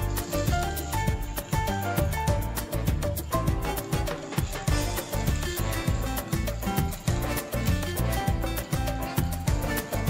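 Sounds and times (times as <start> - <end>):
background music with beat: 0.0 - 10.0.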